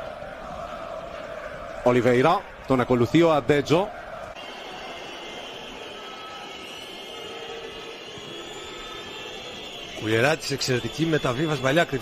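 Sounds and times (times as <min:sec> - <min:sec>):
stadium crowd murmur: 0:00.0 - 0:12.0.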